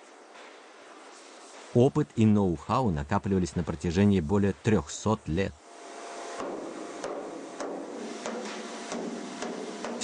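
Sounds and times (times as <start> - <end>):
steady background hiss: 0.0 - 10.0
mallet striking copper: 6.4 - 10.0.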